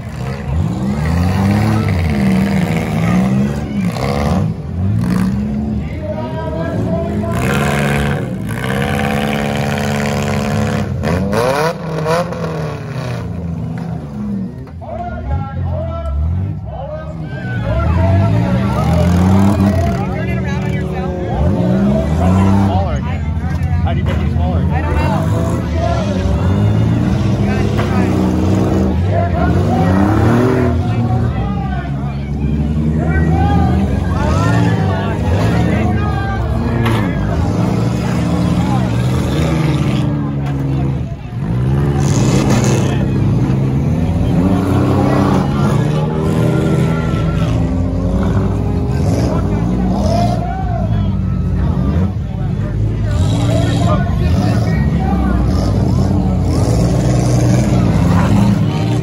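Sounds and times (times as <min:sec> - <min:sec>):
car engines revving hard: 0:00.0 - 0:59.0
crowd voices: 0:00.0 - 0:59.0.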